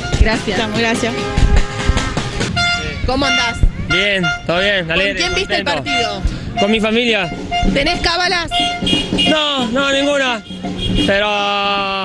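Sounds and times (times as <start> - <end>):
loud clear car horn: 0.0 - 11.4
car horns honking: 0.0 - 11.5.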